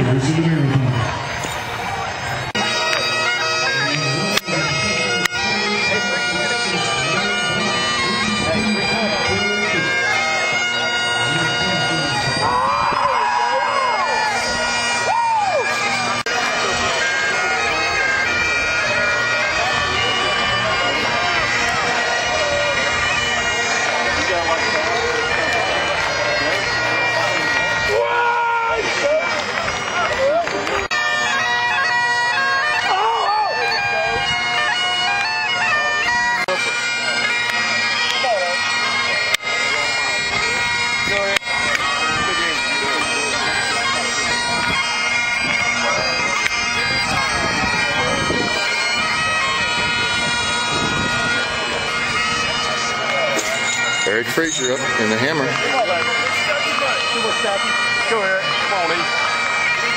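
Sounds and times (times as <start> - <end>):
people talking: 0.0 - 1.1, 2.5 - 30.9, 32.7 - 59.9
bagpipes playing: 0.0 - 59.9.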